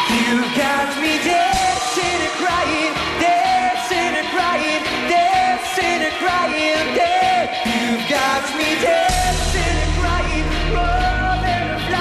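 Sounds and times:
full band accompaniment: 0:00.0 - 0:12.0
pop song with lead vocal: 0:00.0 - 0:12.0.

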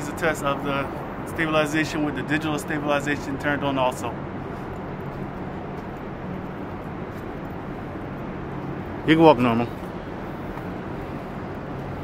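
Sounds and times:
city hum: 0:00.0 - 0:12.0
distant road traffic: 0:00.0 - 0:12.0.

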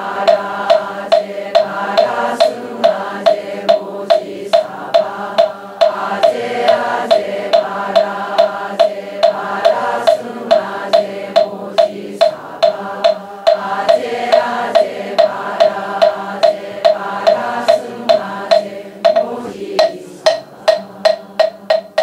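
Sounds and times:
congregation chanting in unison: 0:00.0 - 0:21.8
wooden fish knocking: 0:00.1 - 0:22.0.

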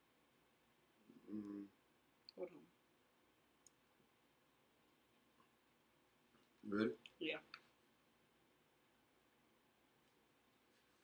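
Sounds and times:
faint sharp clicks: 0:03.6 - 0:03.8.

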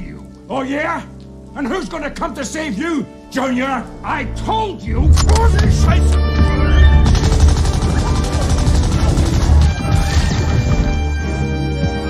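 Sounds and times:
orchestral film score: 0:00.0 - 0:12.0
machine-gun fire: 0:07.0 - 0:10.6.

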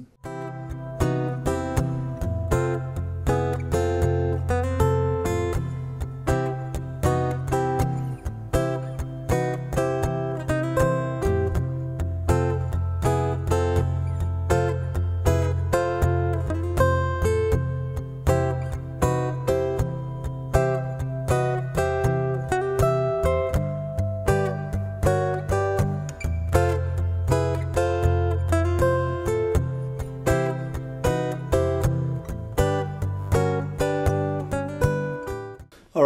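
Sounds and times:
acoustic guitar playing chords: 0:00.0 - 0:36.0.

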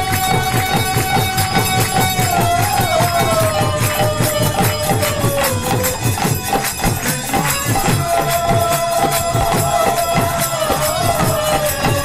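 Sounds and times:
drum beating steady rhythm: 0:00.0 - 0:12.0
harmonium: 0:00.0 - 0:12.0.

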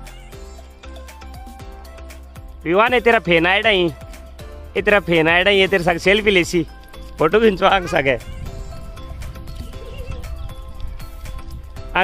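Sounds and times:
background music held notes: 0:00.0 - 0:12.0.

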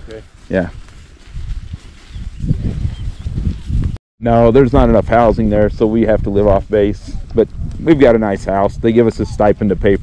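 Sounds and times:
horse hooves on grass: 0:00.0 - 0:10.0.

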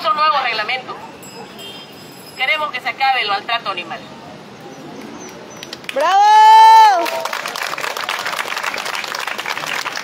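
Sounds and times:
crowd applauding: 0:06.8 - 0:10.0.

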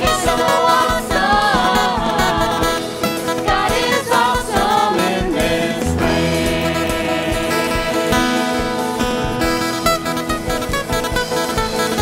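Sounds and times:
group singing: 0:00.0 - 0:09.1
worship band playing: 0:00.0 - 0:12.0.

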